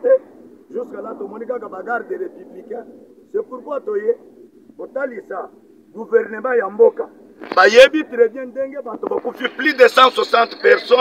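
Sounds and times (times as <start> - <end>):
man speaking: 0.0 - 4.2, 4.8 - 11.0.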